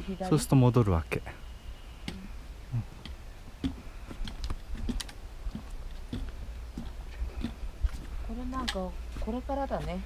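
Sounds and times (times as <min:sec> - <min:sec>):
low steady rumble: 0:00.0 - 0:10.0
trekking pole taps: 0:03.0 - 0:07.6
footsteps on wooden boardwalk: 0:03.0 - 0:10.0.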